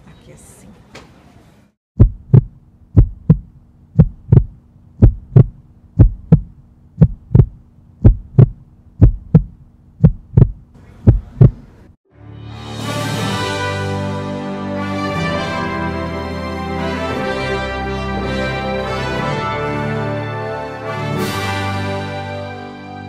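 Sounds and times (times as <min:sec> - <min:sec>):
heartbeat thumps: 0:02.0 - 0:11.7
low steady hum: 0:02.0 - 0:12.0
music: 0:12.1 - 0:23.0.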